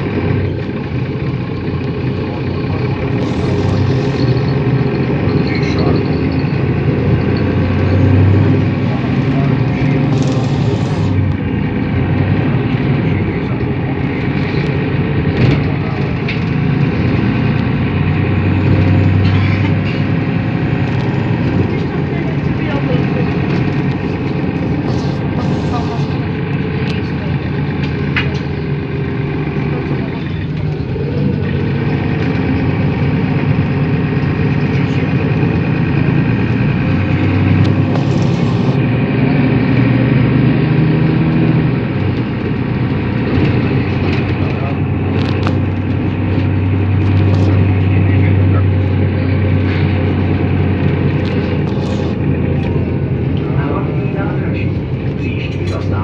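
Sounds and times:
bus engine running: 0.0s - 56.0s
road and cabin noise: 0.0s - 56.0s.

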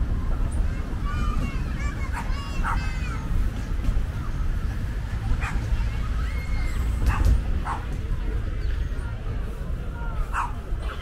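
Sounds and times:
dog barking: 5.4s - 5.6s, 7.1s - 7.9s, 10.3s - 10.6s.

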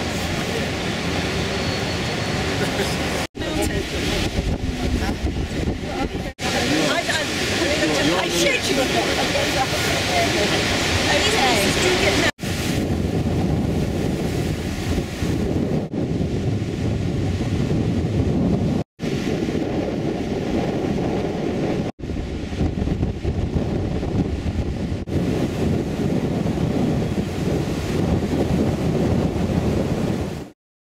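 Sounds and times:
sea surf breaking on beach: 0.0s - 30.6s
wind buffeting microphone: 3.1s - 30.5s.

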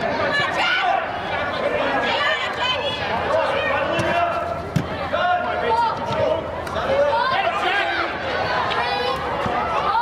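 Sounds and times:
soccer ball kick thud: 3.9s - 5.0s.

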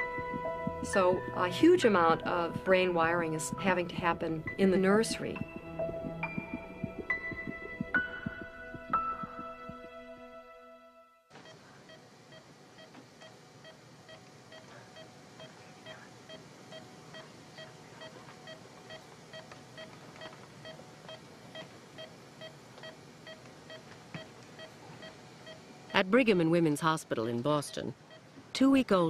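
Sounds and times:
monitor beeping: 0.0s - 9.9s.

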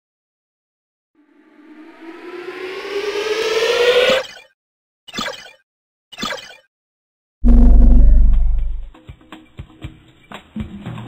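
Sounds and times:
synthesized tone gliding upward: 1.2s - 4.2s, 7.4s - 8.9s.

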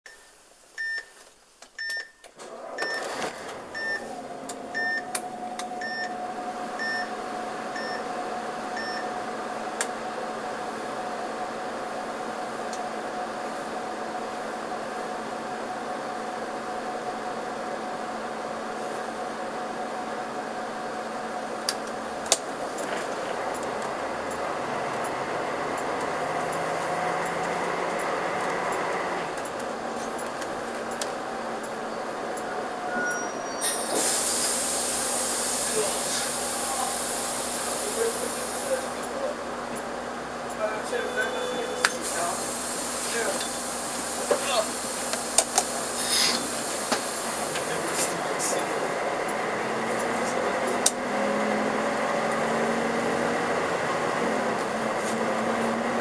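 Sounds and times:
short electronic beeps: 1.8s - 3.1s, 3.8s - 4.1s, 5.8s - 6.2s, 6.8s - 7.1s, 32.9s - 33.6s, 41.0s - 42.0s
diesel bus engine running: 2.5s - 56.0s.

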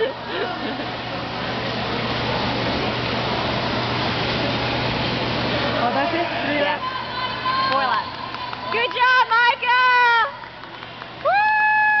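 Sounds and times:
indoor pool hall rushing noise: 0.0s - 12.0s.

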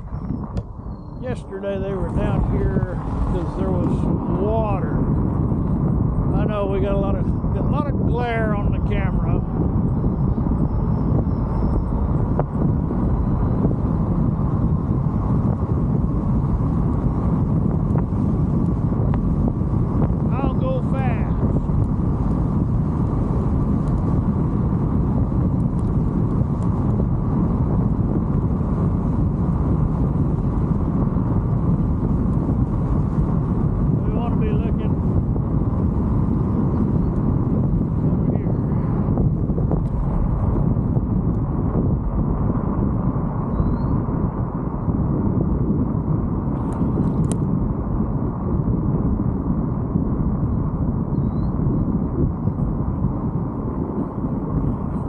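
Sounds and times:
bicycle tyres rolling on asphalt: 0.0s - 55.0s
wind rush on microphone: 0.0s - 55.0s.

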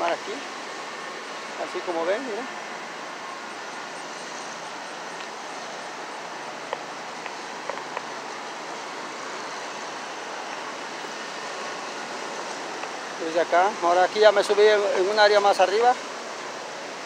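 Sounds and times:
waterfall rushing: 0.0s - 17.0s.

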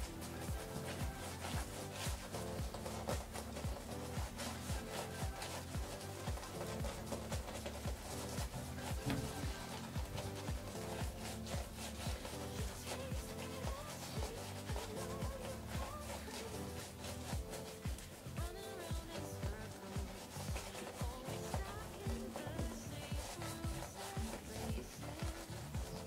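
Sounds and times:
background music: 0.0s - 26.0s
shaving brush scrubbing face: 0.0s - 26.0s.

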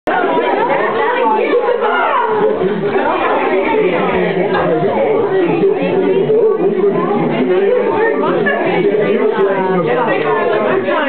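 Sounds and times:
overlapping chatter of voices: 0.1s - 11.0s.

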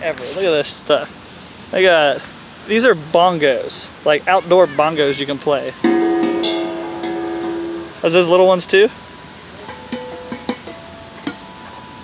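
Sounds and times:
hand strikes on steel drums: 5.8s - 7.9s, 9.6s - 11.4s.

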